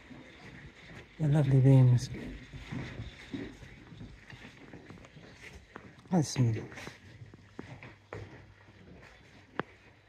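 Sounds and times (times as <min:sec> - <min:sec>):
footsteps: 0:00.0 - 0:10.0.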